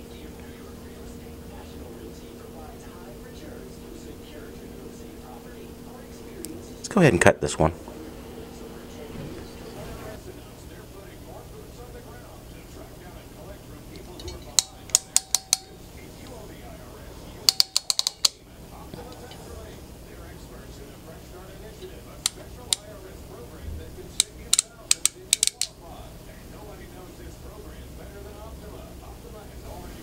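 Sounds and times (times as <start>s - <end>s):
crimp tool clicking: 14.0s - 15.7s, 17.5s - 18.4s, 22.2s - 22.8s, 24.2s - 25.7s.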